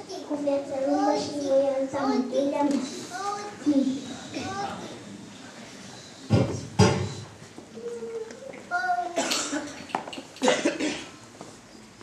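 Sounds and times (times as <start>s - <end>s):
child's short voice: 7.8s - 9.4s
person coughing: 9.2s - 9.8s, 10.4s - 11.2s.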